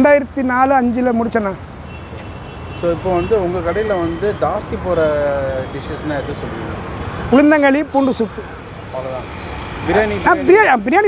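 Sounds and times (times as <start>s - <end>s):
street traffic noise: 0.0s - 11.0s
man speaking close to microphone: 2.8s - 11.0s.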